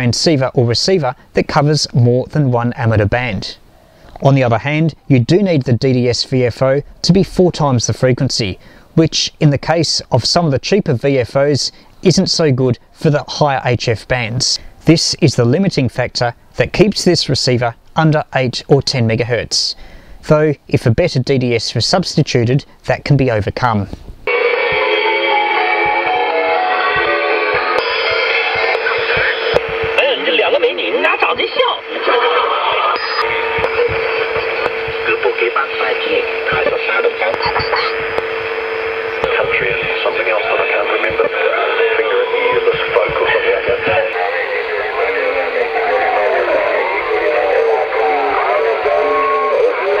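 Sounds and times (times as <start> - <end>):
music over radio loudspeaker: 24.3 - 50.0.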